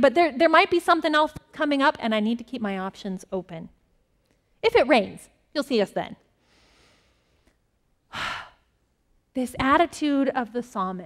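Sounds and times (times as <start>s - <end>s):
woman breathing: 6.4s - 8.8s.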